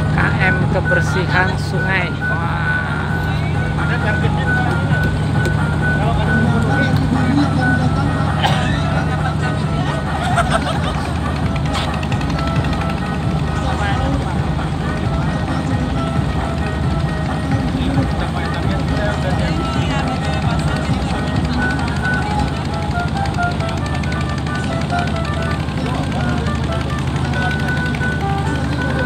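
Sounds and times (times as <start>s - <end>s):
boat engine humming: 0.0s - 29.0s
music over a loudspeaker: 0.0s - 29.0s
people's voices: 0.0s - 29.0s.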